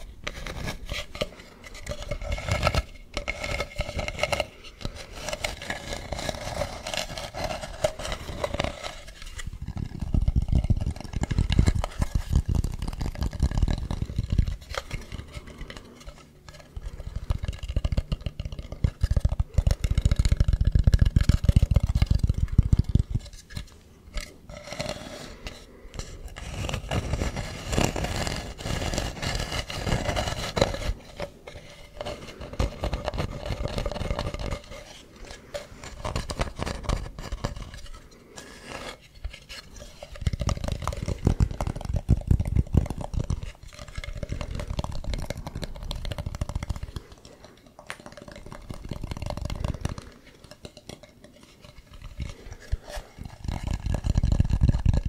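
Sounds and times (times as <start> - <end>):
fingers scratching carved object: 0.0 - 55.0.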